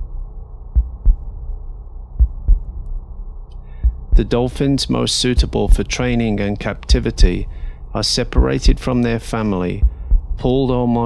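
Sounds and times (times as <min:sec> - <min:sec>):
steady low hum: 0:00.0 - 0:11.0
heartbeat-like thudding: 0:00.8 - 0:01.3, 0:02.2 - 0:02.8, 0:03.8 - 0:04.4, 0:05.3 - 0:07.6, 0:08.2 - 0:10.6.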